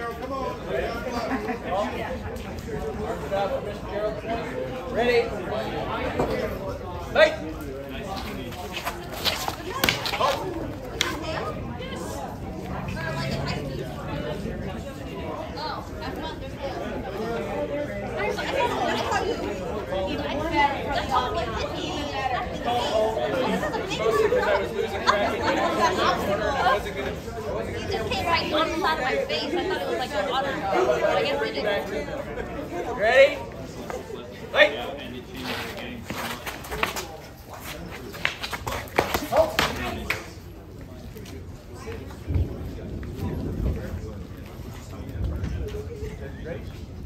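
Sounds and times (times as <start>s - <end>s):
people chattering: 0.0s - 47.0s.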